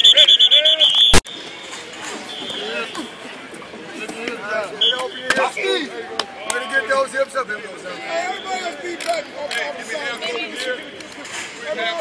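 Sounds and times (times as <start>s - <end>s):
players and coaches shouting: 4.4s - 10.9s.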